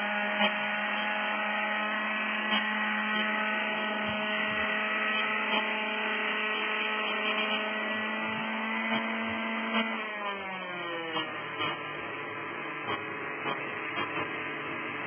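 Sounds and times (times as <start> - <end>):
model helicopter rotor whine: 0.0 - 12.9.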